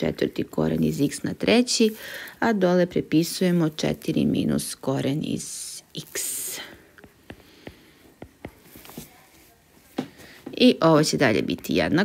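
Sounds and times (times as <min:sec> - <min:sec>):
person speaking: 0:00.0 - 0:12.0
stylus tapping on drawing tablet: 0:07.0 - 0:08.7.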